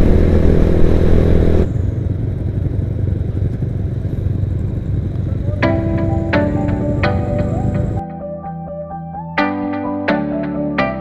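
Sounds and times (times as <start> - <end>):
wind noise on microphone: 0.0 - 1.7
motorcycle engine running: 0.0 - 8.0
low rumble: 0.0 - 8.1
music notes: 5.6 - 11.0.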